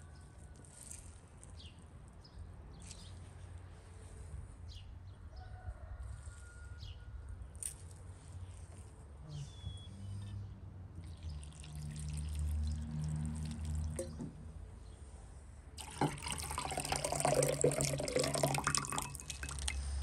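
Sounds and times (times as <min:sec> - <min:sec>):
water pouring and splashing: 0:11.0 - 0:14.3, 0:15.8 - 0:20.0.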